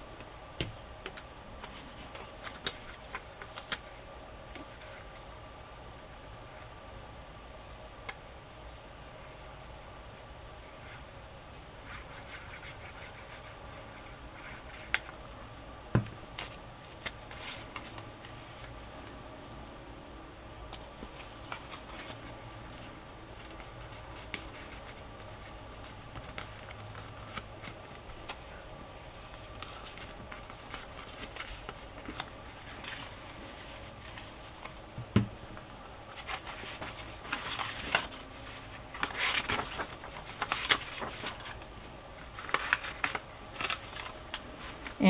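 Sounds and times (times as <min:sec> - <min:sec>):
pages flipping: 0:01.0 - 0:03.9, 0:16.3 - 0:18.8, 0:20.8 - 0:35.2, 0:36.1 - 0:45.0
paper rustling: 0:01.0 - 0:03.9, 0:16.3 - 0:18.8, 0:21.0 - 0:35.2, 0:36.1 - 0:45.0.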